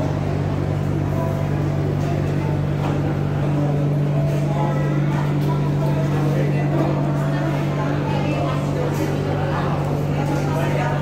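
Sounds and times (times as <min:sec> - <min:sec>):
faint chatter of people: 0:00.0 - 0:11.0
steady low hum: 0:00.0 - 0:11.0.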